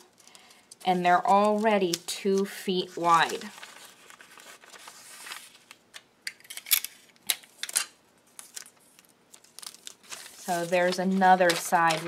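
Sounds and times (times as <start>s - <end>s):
paper bag rustling: 0.8s - 5.8s, 8.4s - 12.0s.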